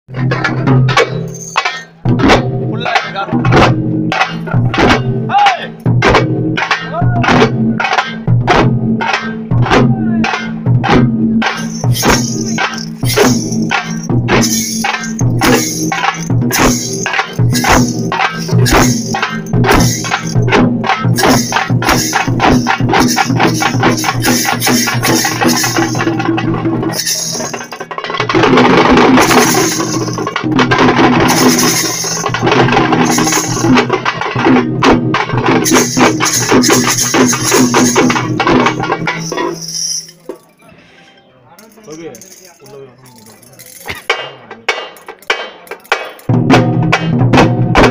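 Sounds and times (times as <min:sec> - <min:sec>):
frame drums beaten with sticks: 0:00.1 - 0:40.4, 0:41.9 - 0:47.9.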